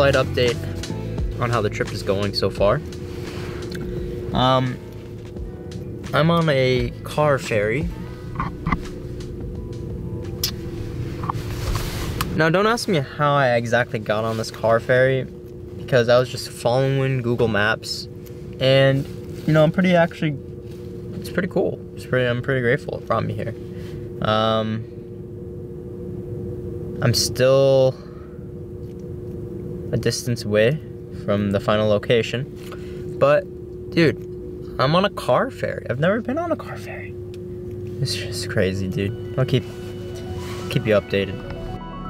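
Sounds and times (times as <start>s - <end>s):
ferry engines droning: 0.0s - 42.0s.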